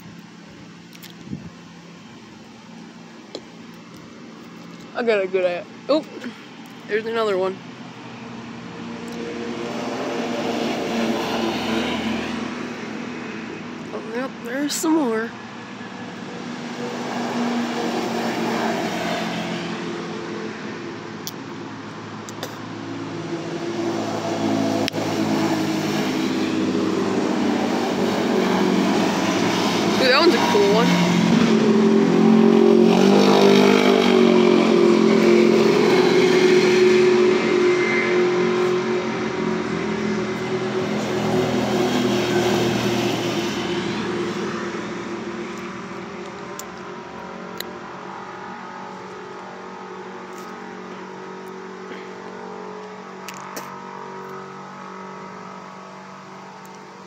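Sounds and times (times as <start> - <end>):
utility vehicle engines passing: 0.0 - 57.0.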